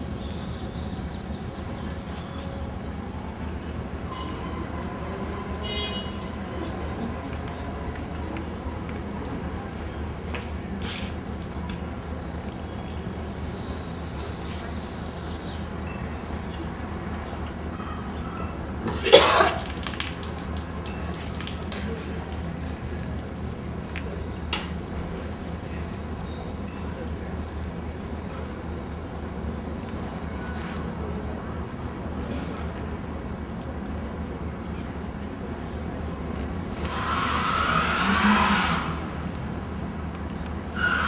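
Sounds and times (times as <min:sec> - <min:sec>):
woman coughing: 0:18.9 - 0:19.6.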